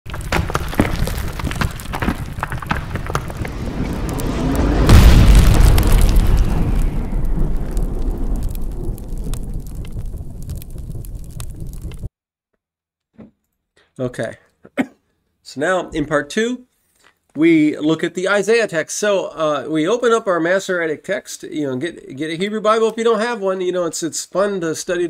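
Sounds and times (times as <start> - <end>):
crackling: 0.0 - 12.1
deep boom: 0.2 - 12.1
long rumbling: 0.8 - 12.1.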